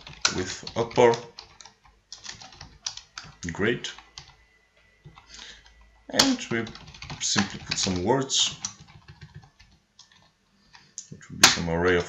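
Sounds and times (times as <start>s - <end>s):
computer keyboard typing: 0.0s - 4.4s, 5.0s - 11.1s.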